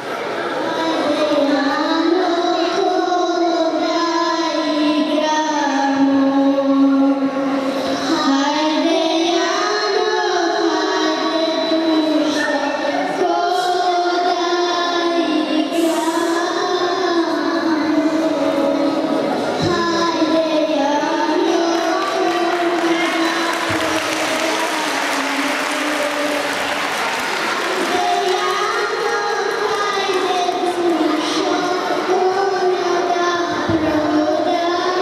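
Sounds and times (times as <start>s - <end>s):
girls singing into microphone: 0.8s - 35.0s.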